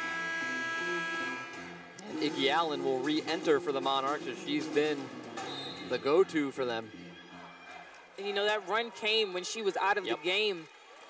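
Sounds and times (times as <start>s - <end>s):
arena horn buzzing tone: 0.0s - 2.2s.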